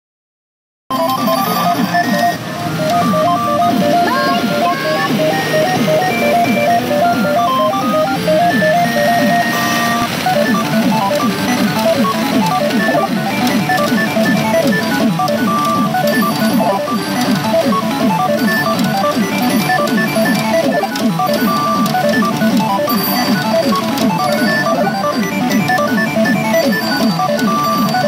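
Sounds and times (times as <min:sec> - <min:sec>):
electronic jingle music: 0:00.9 - 0:28.0.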